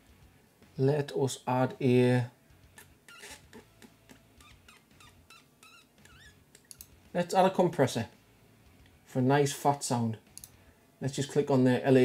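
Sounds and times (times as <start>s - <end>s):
high squeaky chirps: 3.0s - 6.8s
computer mouse clicks: 5.6s - 7.0s, 10.3s - 10.6s.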